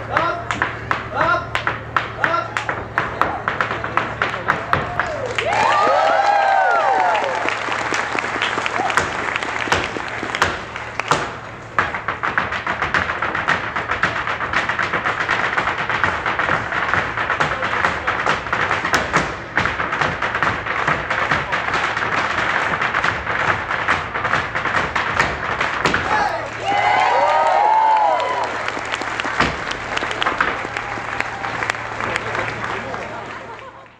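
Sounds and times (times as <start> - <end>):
hard-shoe step dancing on stage: 0.0 - 33.9
people shouting and whooping: 4.4 - 10.4, 26.0 - 33.9.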